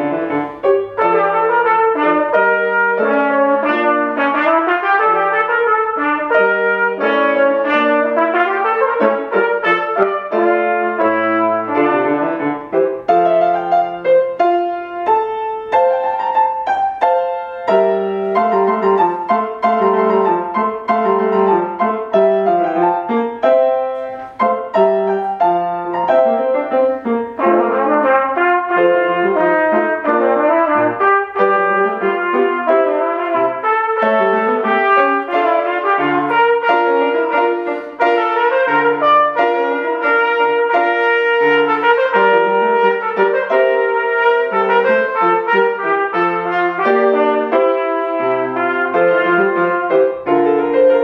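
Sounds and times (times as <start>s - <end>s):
piano accompaniment: 0.0s - 51.0s
trumpet melody: 0.0s - 51.0s.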